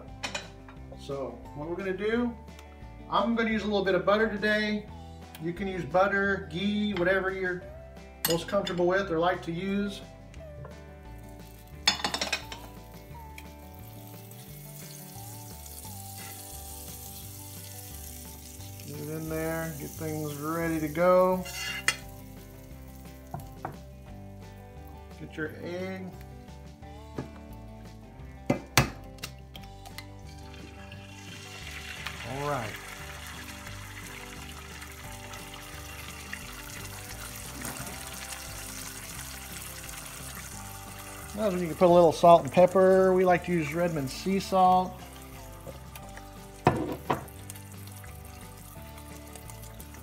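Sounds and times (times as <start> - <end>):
butter sizzling in skillet: 11.1 - 25.1, 30.0 - 50.0.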